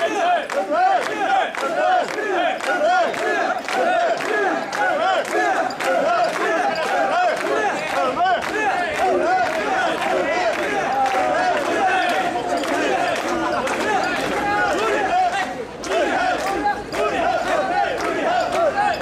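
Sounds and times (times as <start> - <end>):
men chanting and shouting: 0.0 - 19.0.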